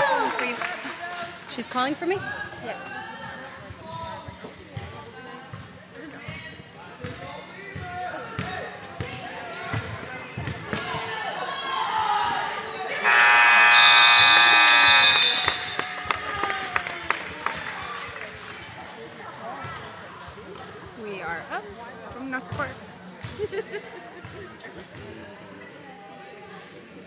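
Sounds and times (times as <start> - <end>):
spectators chatting: 0.0 - 27.0
scoreboard buzzer: 13.0 - 15.8.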